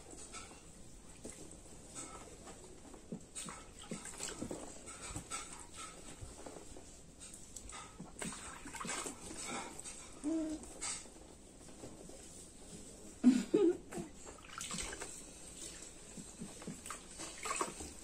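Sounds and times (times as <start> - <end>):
water splashing in baby bath: 3.4 - 5.9, 7.7 - 11.0, 14.0 - 18.0
baby whimpering: 10.2 - 10.7
sponge scrubbing: 14.0 - 18.0.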